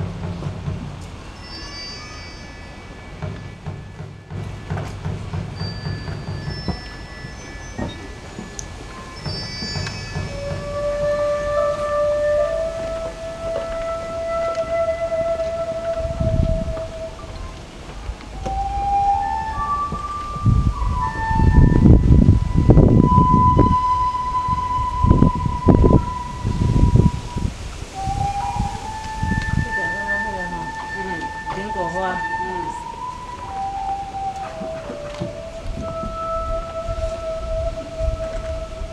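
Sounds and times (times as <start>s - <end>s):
bamboo flute melody: 0.0s - 38.9s
low rumbling noise: 0.0s - 38.9s.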